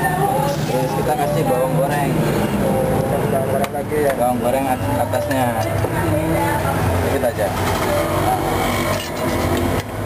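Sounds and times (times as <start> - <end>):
traffic engines rumbling: 0.0 - 10.0.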